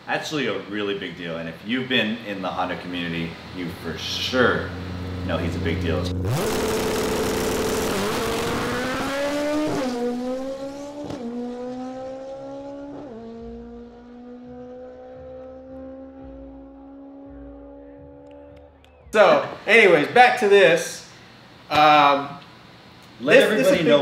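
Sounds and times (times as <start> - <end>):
race car engine accelerating: 3.4 - 19.1.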